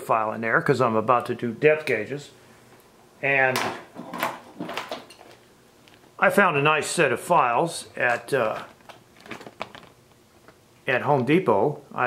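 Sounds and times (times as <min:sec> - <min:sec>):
plastic pack knocking and clattering: 0:08.4 - 0:10.6.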